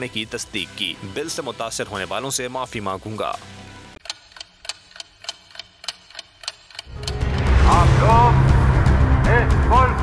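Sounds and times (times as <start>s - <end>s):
clock ticking: 4.0s - 7.7s.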